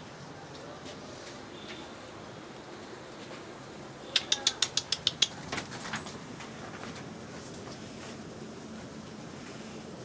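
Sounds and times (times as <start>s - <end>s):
sharp clicks: 4.1s - 5.7s.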